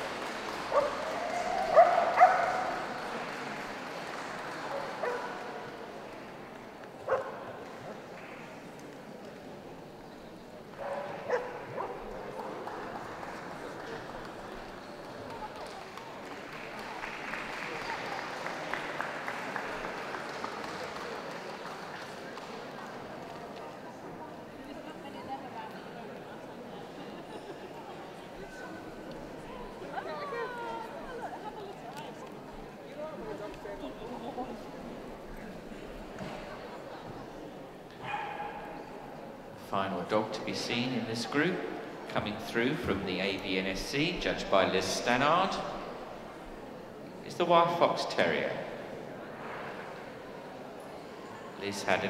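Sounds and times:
steady background noise: 0:00.0 - 0:52.0.

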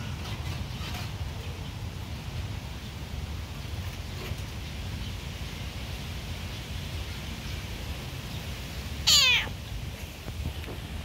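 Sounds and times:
cat meowing: 0:09.0 - 0:09.6.

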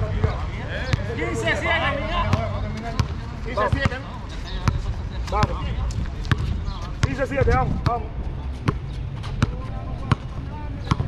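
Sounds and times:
players calling out: 0:00.0 - 0:05.7
basketball bouncing on concrete: 0:02.3 - 0:05.6, 0:06.2 - 0:08.0, 0:08.6 - 0:11.0.

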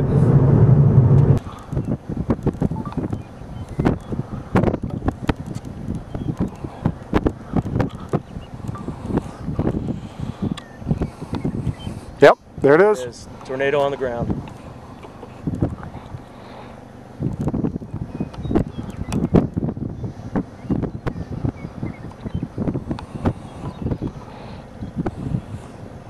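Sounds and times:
wind buffeting microphone: 0:00.0 - 0:12.8, 0:13.7 - 0:16.3, 0:17.0 - 0:26.0
car road noise: 0:00.0 - 0:26.0.

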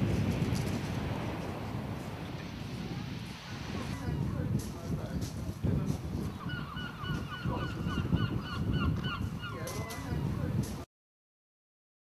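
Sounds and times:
wind rumble on microphone: 0:00.0 - 0:10.9
bird honking calls: 0:06.4 - 0:10.1.

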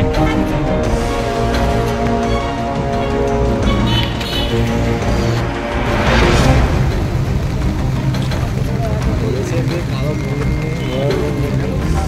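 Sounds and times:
steady low rumble: 0:00.8 - 0:10.0
men talking: 0:07.9 - 0:12.0.

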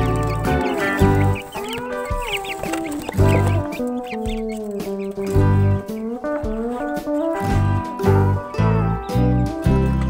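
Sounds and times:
background music with deep beat: 0:00.0 - 0:10.0
chickens clucking: 0:00.0 - 0:10.0.

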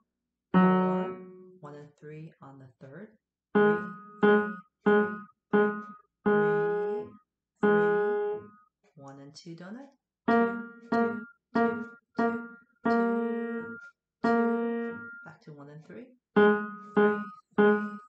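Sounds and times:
piano notes: 0:00.5 - 0:01.6, 0:03.6 - 0:08.6, 0:10.3 - 0:15.3, 0:16.4 - 0:18.0
person speaking: 0:06.3 - 0:07.1, 0:09.0 - 0:09.8, 0:15.2 - 0:16.0.

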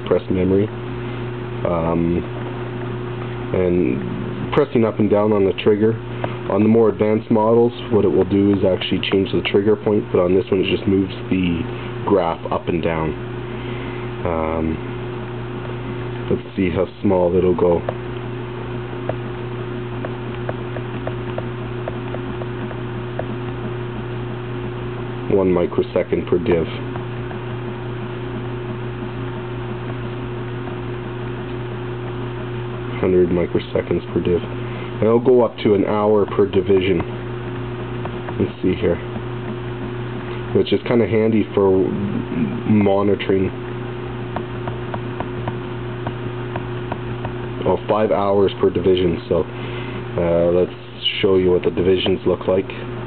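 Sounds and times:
low electrical hum: 0:00.0 - 0:53.0
rapid key ticking: 0:04.5 - 0:13.2, 0:14.2 - 0:41.7, 0:42.7 - 0:49.3.

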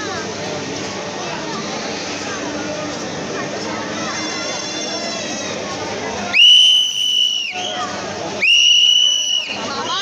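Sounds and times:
crowd chatter: 0:00.0 - 0:10.0
whistle blasts: 0:06.4 - 0:07.8, 0:08.4 - 0:09.6.

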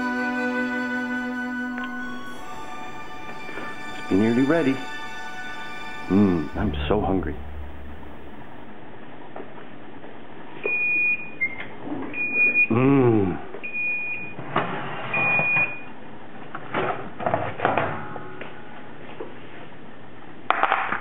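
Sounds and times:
person exclaiming: 0:12.7 - 0:13.4.

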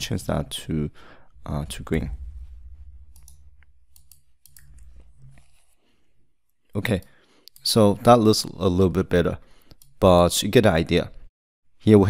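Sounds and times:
faint low hum: 0:00.2 - 0:05.7.

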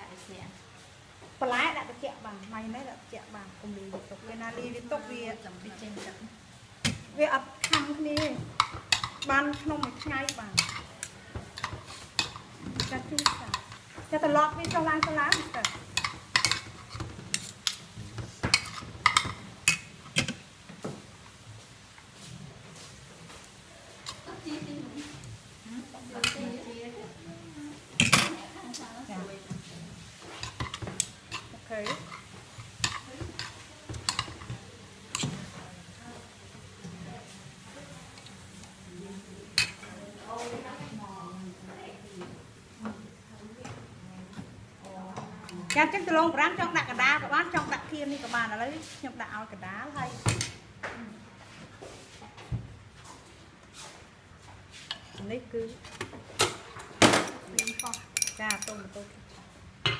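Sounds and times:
cutlery clinking on ceramic bowl: 0:57.6 - 0:58.8.

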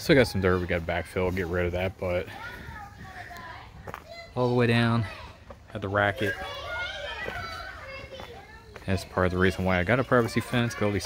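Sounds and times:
children yelling while playing: 0:02.3 - 0:08.8, 0:09.8 - 0:11.0.

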